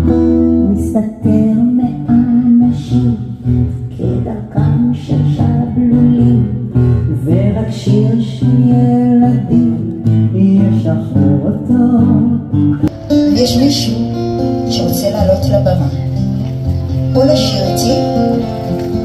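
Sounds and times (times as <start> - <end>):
person singing: 0.0 - 15.4
acoustic guitar: 0.0 - 19.0.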